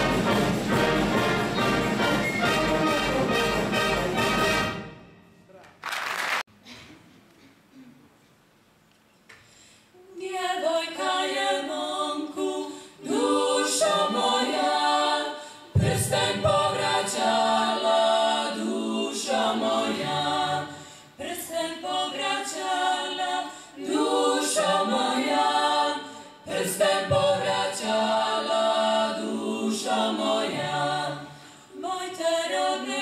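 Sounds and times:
singers breathing: 9.4 - 10.0, 15.3 - 15.8, 20.7 - 21.2, 23.4 - 23.8, 31.2 - 31.8
vocal ensemble singing a cappella: 9.9 - 33.0.

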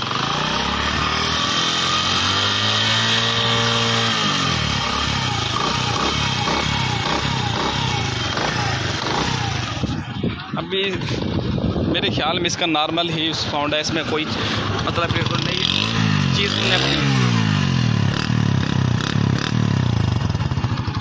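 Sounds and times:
motorcycle engine revving and idling: 0.0 - 12.6, 13.2 - 21.0.

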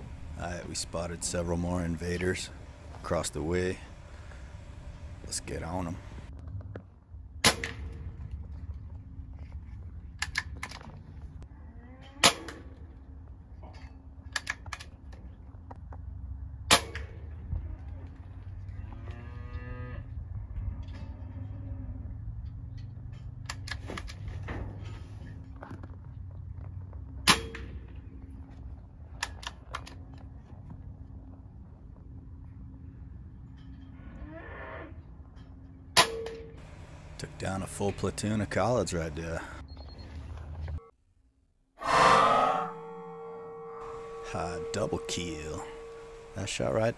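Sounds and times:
low hum: 0.0 - 46.9
cow mooing: 41.8 - 46.4.

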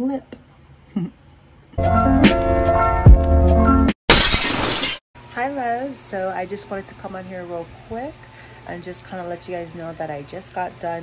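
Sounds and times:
glass shattering sound effect: 4.1 - 5.0.

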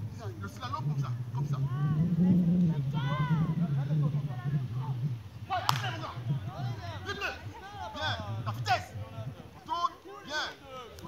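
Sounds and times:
low steady hum: 0.0 - 11.0
children's voices: 1.6 - 8.2
sharp smack: 5.7 - 5.9.

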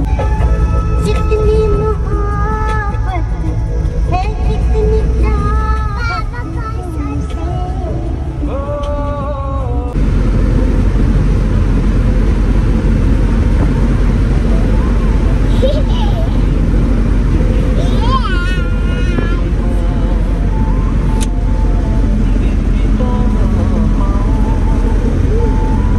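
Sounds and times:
vehicle engine and road rumble: 0.0 - 25.9
girl laughing: 15.5 - 16.6.

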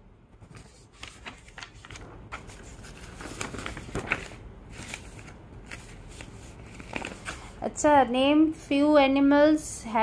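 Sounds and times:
paper rustling: 0.4 - 7.6.

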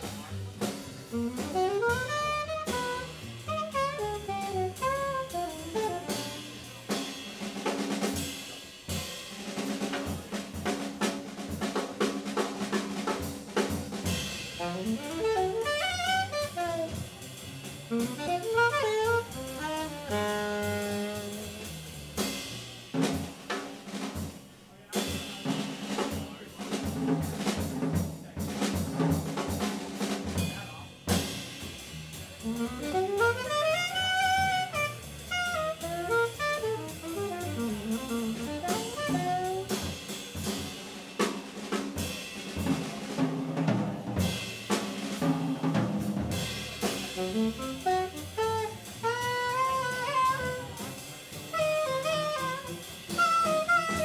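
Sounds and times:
walking upright bass: 0.0 - 7.1, 14.1 - 23.0, 31.7 - 40.0, 45.2 - 54.0
drum kit with cymbals: 0.0 - 54.0
saxophone melody: 1.1 - 6.6, 14.6 - 17.0, 17.9 - 21.8, 32.4 - 39.9, 47.1 - 54.0.

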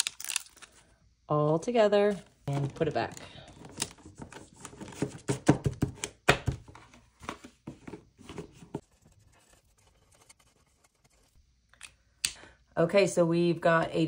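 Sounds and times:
paper envelopes rustling and tapping: 2.5 - 8.8.

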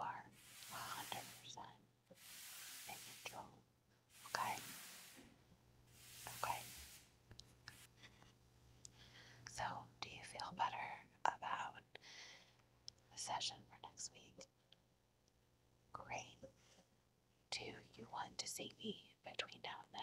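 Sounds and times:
woman whispering: 0.0 - 1.8, 2.8 - 3.6, 4.3 - 4.7, 6.3 - 6.8, 9.5 - 12.0, 13.1 - 14.5, 15.9 - 16.5, 17.5 - 20.0
brief hissing sweeps: 0.4 - 1.5, 2.2 - 3.5, 4.2 - 5.3, 5.9 - 7.1.

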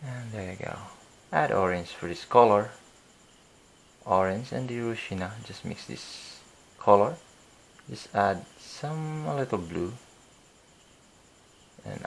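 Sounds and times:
man speaking: 0.0 - 2.8, 4.0 - 7.2, 7.9 - 10.0, 11.8 - 12.0
faint high whine: 0.0 - 12.0.

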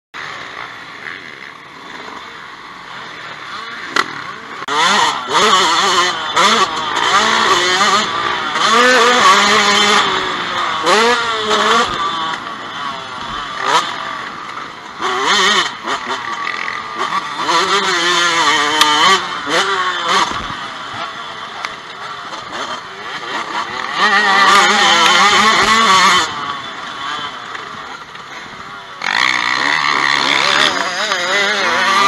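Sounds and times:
dirt bike engine revving: 0.2 - 32.0.

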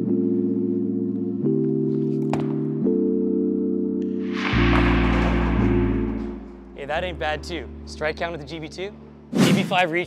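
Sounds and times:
music with long held chords: 0.0 - 7.9.

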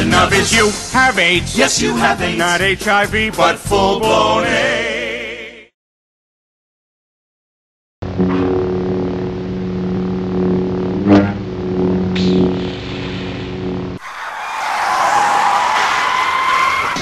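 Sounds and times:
lightsaber electric hum: 8.0 - 14.0.

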